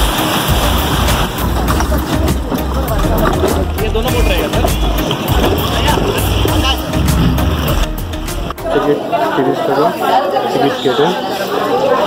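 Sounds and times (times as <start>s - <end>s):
low rumble: 0.0s - 8.9s
music: 0.0s - 9.3s
people chattering indoors: 0.0s - 12.0s.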